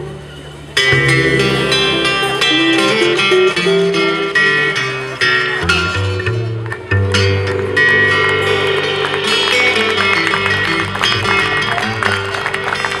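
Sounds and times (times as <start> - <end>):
acoustic guitars strummed and picked: 0.0 - 13.0
upright bass: 0.0 - 13.0.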